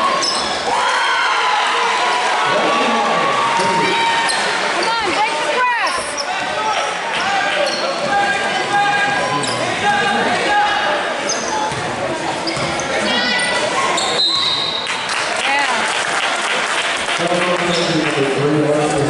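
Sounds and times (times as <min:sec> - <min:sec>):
sneakers squeaking: 0:00.0 - 0:00.7, 0:04.2 - 0:06.6, 0:07.2 - 0:08.4, 0:09.2 - 0:09.8, 0:11.2 - 0:15.0
spectators' voices: 0:00.0 - 0:19.0.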